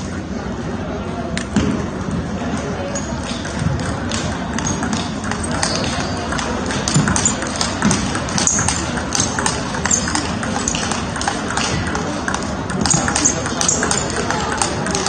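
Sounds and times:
background chatter: 0.0s - 15.0s
clatter in a busy hall: 0.0s - 15.0s
table tennis ball clicks: 3.0s - 15.0s.

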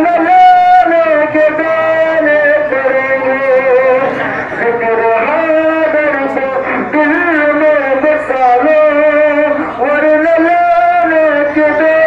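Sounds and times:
man singing into a microphone: 0.0s - 12.0s.

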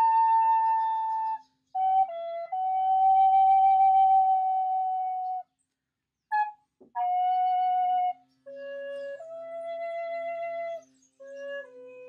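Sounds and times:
wooden flute long note: 0.0s - 5.4s, 6.3s - 12.0s.

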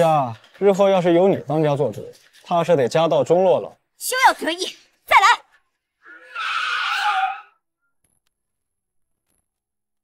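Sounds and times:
woman's shrill battle cry: 6.1s - 7.6s.

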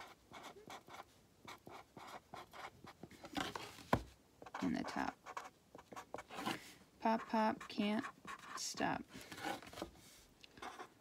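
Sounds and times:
pen scratching on paper: 0.0s - 3.6s, 4.4s - 8.8s, 10.6s - 11.0s.

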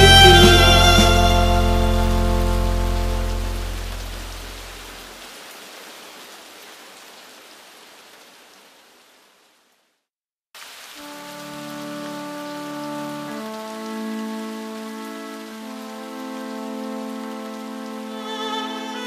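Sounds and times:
backing-track chords: 0.0s - 4.8s
steady rain falling: 0.0s - 19.0s.

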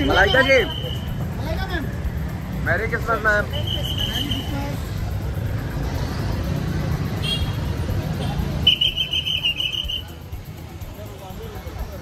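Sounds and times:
crowd rumble: 0.0s - 12.0s
street traffic: 0.0s - 12.0s
pea whistle trilling blasts: 8.7s - 10.2s.

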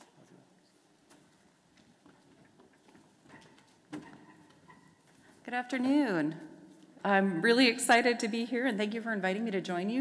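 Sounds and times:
faint footsteps: 0.0s - 7.2s.

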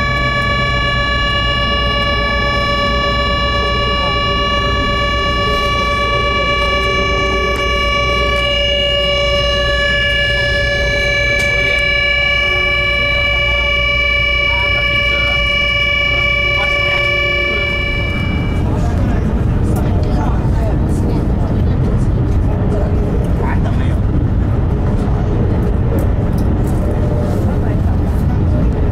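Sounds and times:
high electric whine: 0.0s - 21.4s
train low rumble: 0.0s - 28.9s.

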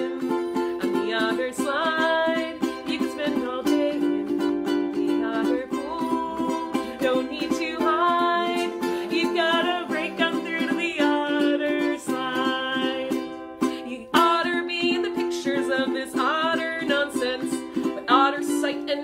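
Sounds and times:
ukulele strumming: 0.0s - 19.0s
woman singing: 0.0s - 19.0s.

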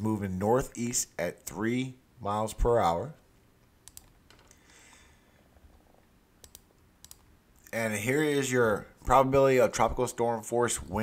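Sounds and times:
computer mouse clicks: 3.8s - 4.6s, 6.4s - 7.3s.

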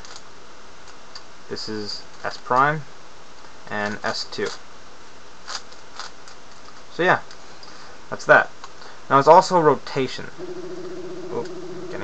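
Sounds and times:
steady hiss: 0.0s - 12.0s
puzzle cube clicks: 4.4s - 4.6s.

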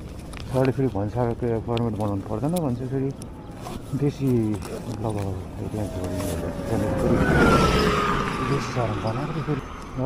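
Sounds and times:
road vehicle passing by: 5.0s - 10.0s
whining tone falling in pitch: 5.6s - 10.0s.

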